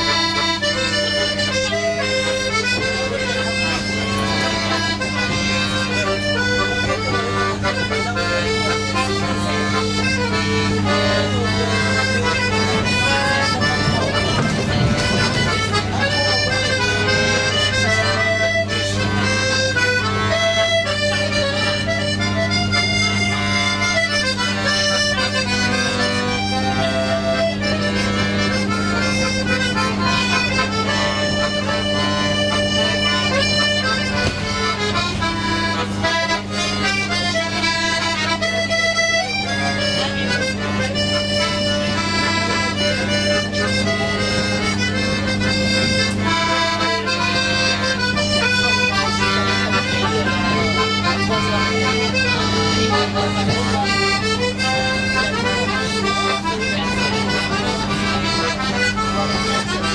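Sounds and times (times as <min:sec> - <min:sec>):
accordion melody: 0:00.0 - 0:59.9
steady low hum: 0:00.0 - 0:59.9.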